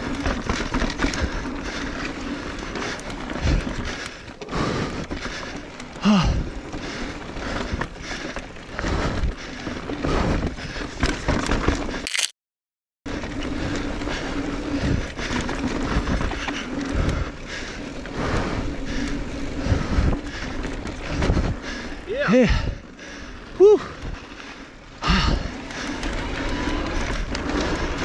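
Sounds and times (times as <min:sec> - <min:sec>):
bike knocking and rattling: 0:00.0 - 0:12.0, 0:13.1 - 0:22.2.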